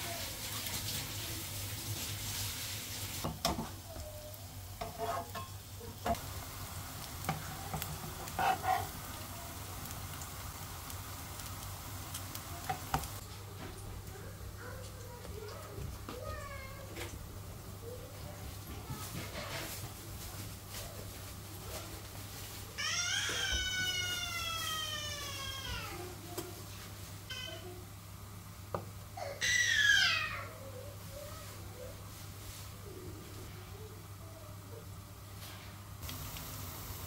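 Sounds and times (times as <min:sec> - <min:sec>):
patties sizzling in oil: 0:00.0 - 0:34.2, 0:35.1 - 0:37.0
metal spatula scraping pan: 0:04.8 - 0:06.2, 0:07.7 - 0:09.0.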